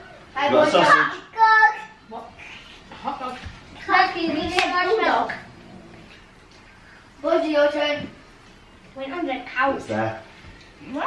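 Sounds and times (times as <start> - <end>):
child's voice: 0.4 - 2.6, 3.8 - 5.4.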